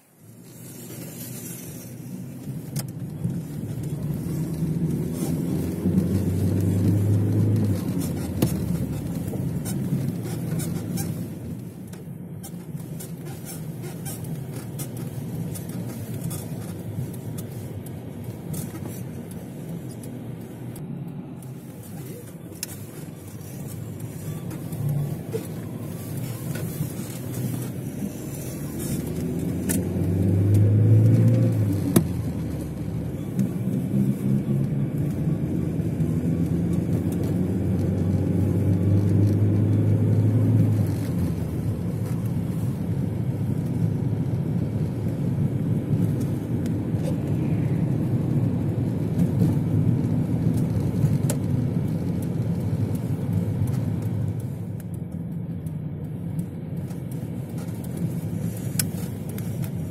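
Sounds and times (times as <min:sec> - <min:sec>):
road noise inside car: 0:00.0 - 0:59.9
car engine accelerating: 0:02.1 - 0:11.4, 0:19.6 - 0:54.6.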